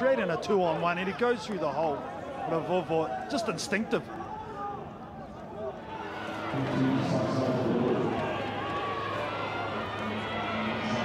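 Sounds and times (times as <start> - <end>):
stadium crowd voices: 0.0 - 11.0.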